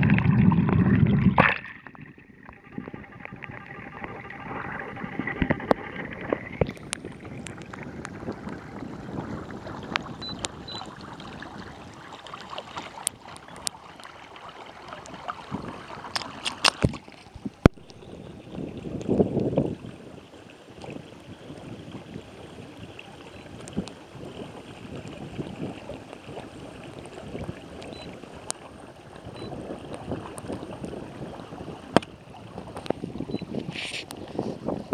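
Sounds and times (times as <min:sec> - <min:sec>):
water rushing along kayak hull: 0:00.0 - 0:34.9
sharp splashy ticks: 0:05.2 - 0:08.6, 0:09.8 - 0:10.9, 0:12.2 - 0:14.1.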